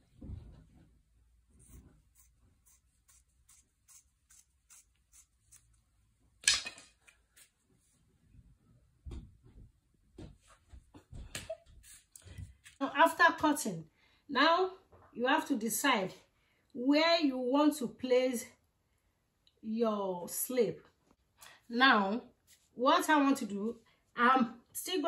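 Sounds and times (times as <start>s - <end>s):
scissors cutting fabric: 2.1s - 5.8s.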